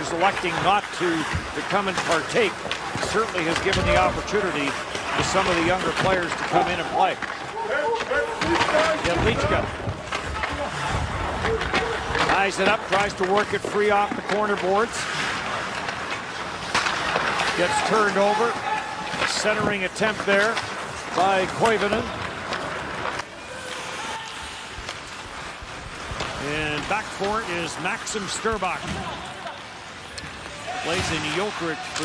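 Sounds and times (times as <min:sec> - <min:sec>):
arena noise: 0:00.0 - 0:32.0
skates hissing on ice: 0:22.6 - 0:28.6
commentator speaking: 0:26.4 - 0:29.0.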